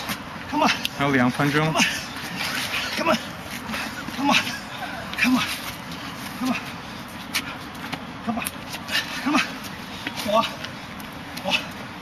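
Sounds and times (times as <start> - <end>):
person shouting with effort: 0.5 - 0.9.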